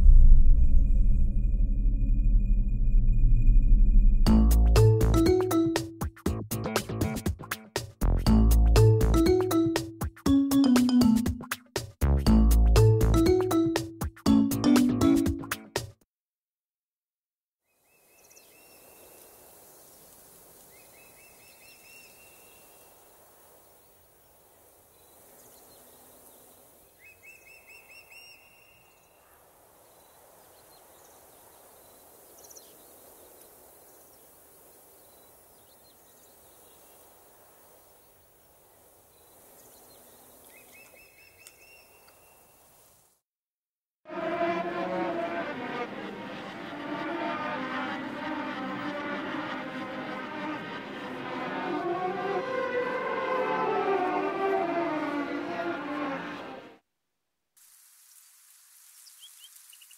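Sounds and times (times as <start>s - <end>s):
bird chirping: 25.0s - 29.3s, 39.2s - 42.4s
train running: 44.1s - 56.7s
underground station ambience: 44.1s - 56.8s.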